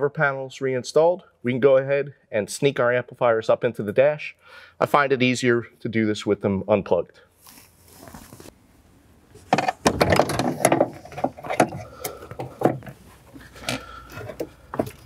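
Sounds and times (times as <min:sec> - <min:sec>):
clicks and knocks against plastic: 0:09.4 - 0:15.0.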